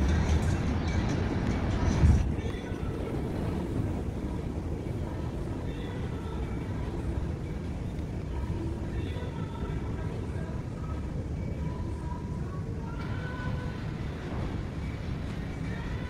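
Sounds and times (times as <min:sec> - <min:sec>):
faint distant voices: 0:00.0 - 0:16.0
hotel lobby hum: 0:00.0 - 0:16.0
low street rumble: 0:00.0 - 0:16.0.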